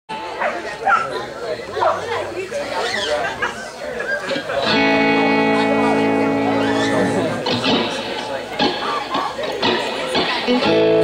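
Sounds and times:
chatter and voices: 0.1 - 11.0.

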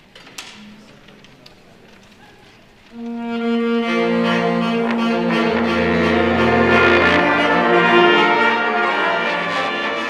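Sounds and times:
concert band playing: 3.0 - 10.0
sustained brass chord: 3.0 - 10.0.

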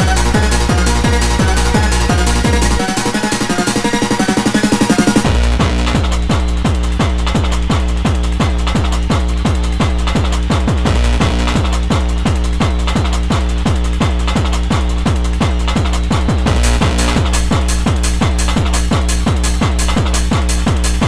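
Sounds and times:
fast techno dance track: 0.0 - 21.0.

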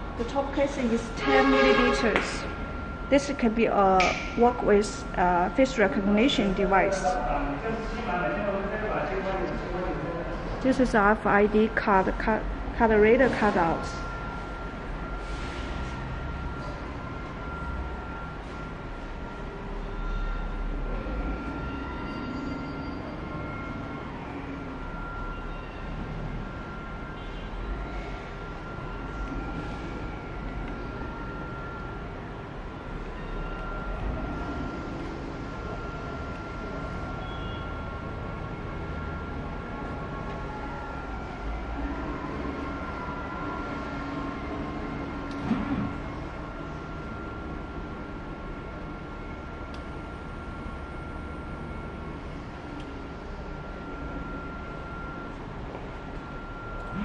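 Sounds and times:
high-pitched machine whine: 0.0 - 57.0.

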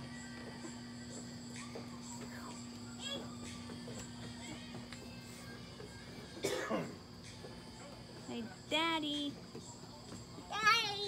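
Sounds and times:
person's cough-like vocal burst: 6.4 - 7.0.

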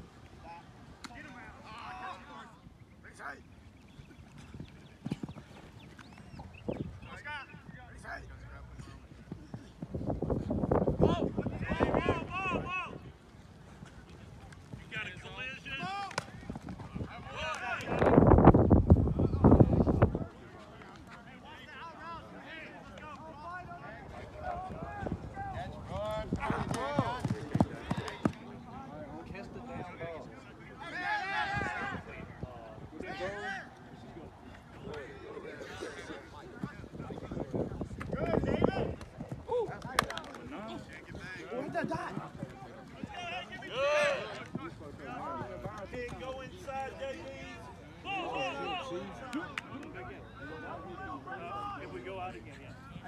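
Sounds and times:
players and coaches calling out: 0.0 - 53.0
players shouting high calls: 30.8 - 32.1.

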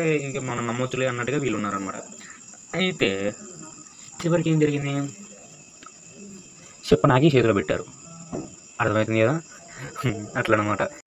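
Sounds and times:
man speaking: 0.0 - 5.6, 6.2 - 11.0
steady high-pitched whine: 0.0 - 11.0.

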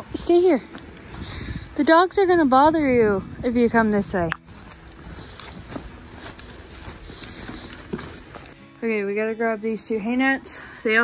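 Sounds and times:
soft background music: 0.0 - 11.0
footsteps in snow: 3.7 - 8.8.

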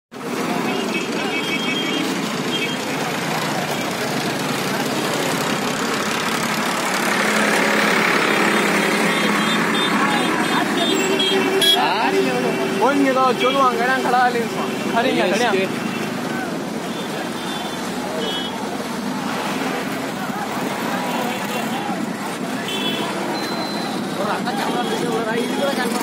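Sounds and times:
many people's voices: 0.1 - 26.0
street traffic: 0.1 - 26.0
motorcycles running: 0.2 - 26.0
short high beeps: 23.3 - 24.0.

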